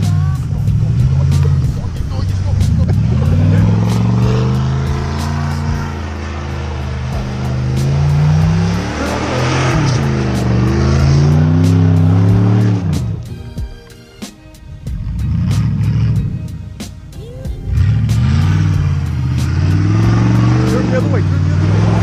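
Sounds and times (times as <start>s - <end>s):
truck engine revving: 0.0s - 22.0s.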